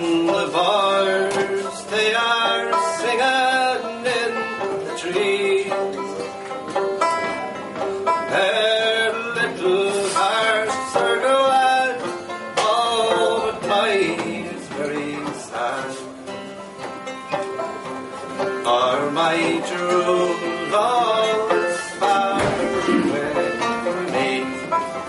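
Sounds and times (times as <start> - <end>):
man singing folk ballad: 0.0 - 6.7, 8.2 - 16.5, 18.4 - 25.0
banjo: 0.0 - 25.0
bouzouki: 0.0 - 25.0
concertina: 0.0 - 25.0.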